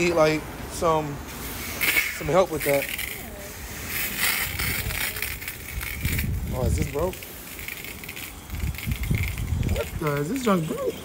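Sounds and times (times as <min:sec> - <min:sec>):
pressure washer spray hissing: 0:00.8 - 0:05.3.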